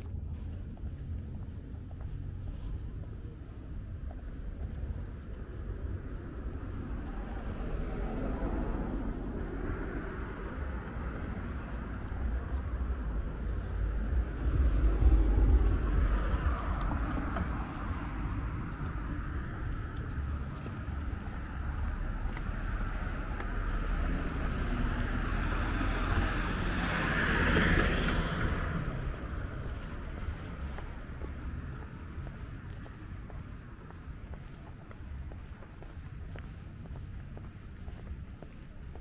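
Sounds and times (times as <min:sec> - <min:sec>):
cars passing with low rumble: 0:00.0 - 0:39.0.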